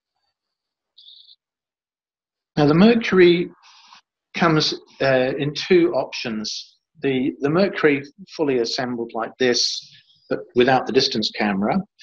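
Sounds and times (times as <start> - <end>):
faint high-pitched chirp: 1.0 - 1.4.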